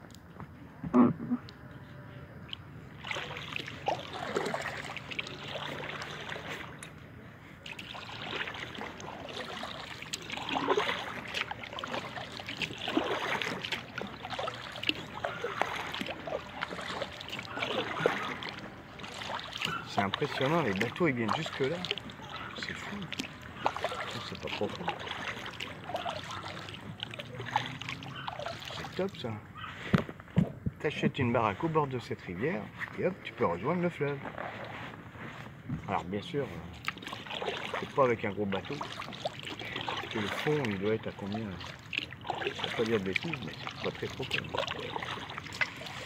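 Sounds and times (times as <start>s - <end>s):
water dripping from paddle: 2.5s - 7.0s, 7.6s - 29.1s, 36.7s - 46.0s
kayak paddle strokes in water: 2.5s - 30.0s, 31.3s - 46.0s.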